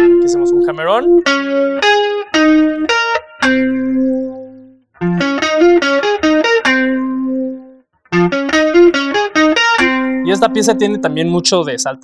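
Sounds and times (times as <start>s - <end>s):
electric guitar single-note line: 0.0s - 12.0s.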